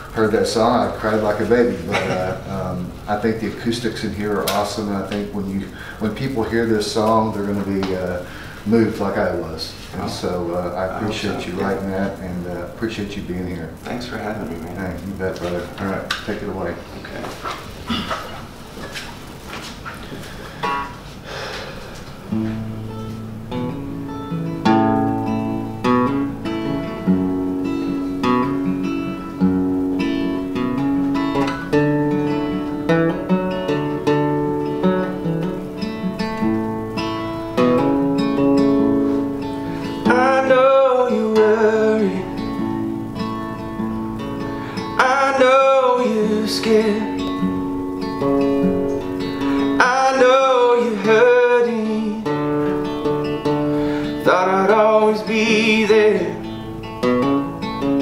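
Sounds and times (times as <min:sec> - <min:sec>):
acoustic guitar chords: 0:00.0 - 0:58.0
man singing: 0:39.9 - 0:42.7, 0:44.8 - 0:47.5, 0:49.6 - 0:52.5, 0:54.1 - 0:56.6.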